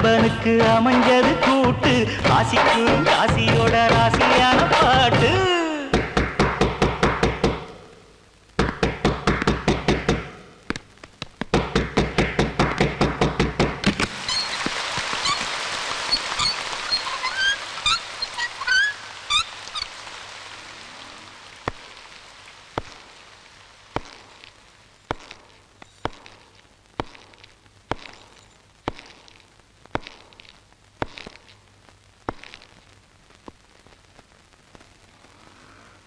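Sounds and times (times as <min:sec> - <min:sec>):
steady hiss: 0:00.0 - 0:36.0
rapid knocking on wooden door: 0:06.0 - 0:07.6, 0:08.6 - 0:10.3, 0:11.5 - 0:13.8.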